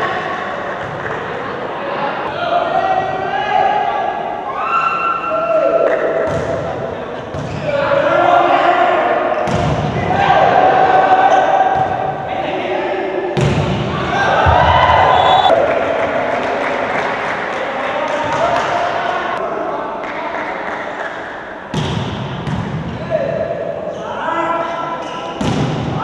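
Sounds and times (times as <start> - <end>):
crowd shouting and cheering: 0.0 - 7.0, 7.7 - 20.1
volleyball hits: 6.1 - 6.7, 9.4 - 10.1, 13.4 - 15.6, 21.7 - 22.9.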